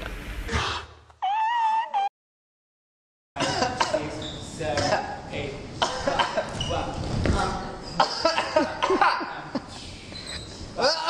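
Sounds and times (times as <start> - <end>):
sneakers thumping and squeaking: 6.5 - 8.0.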